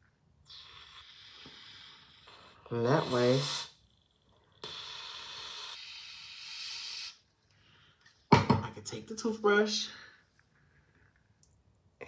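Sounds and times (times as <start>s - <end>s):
aerosol spray hissing: 2.9s - 3.8s, 4.6s - 7.2s.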